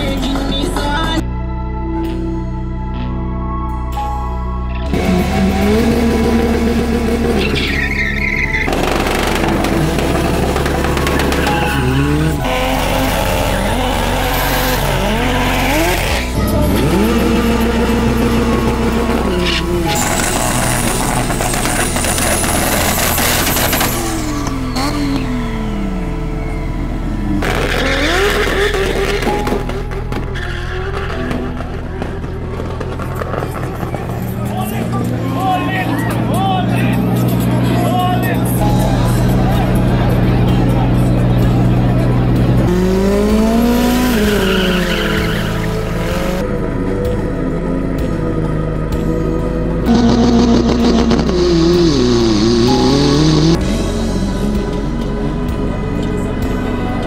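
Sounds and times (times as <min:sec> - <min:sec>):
background music with bass line: 0:00.0 - 0:57.0
race cars revving: 0:04.9 - 0:57.0
tyre squeal: 0:07.3 - 0:17.5, 0:19.1 - 0:25.5, 0:27.4 - 0:31.8, 0:43.6 - 0:46.4.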